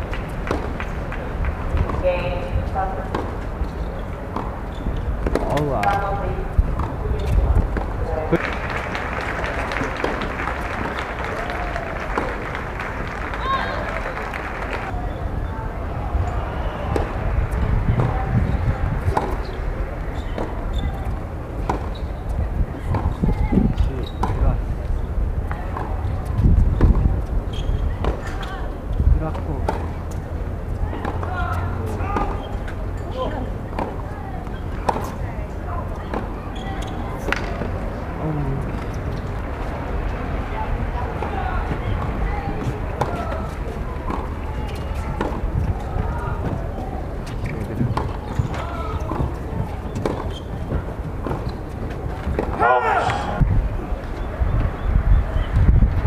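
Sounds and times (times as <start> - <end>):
tennis ball bouncing on court: 0.1 - 0.9, 1.6 - 14.2, 16.9 - 19.6, 20.2 - 24.5, 25.4 - 28.5, 29.3 - 30.2, 30.8 - 37.8, 40.8 - 54.8
people talking nearby: 13.4 - 56.0
tennis racquet hitting ball: 41.1 - 53.5.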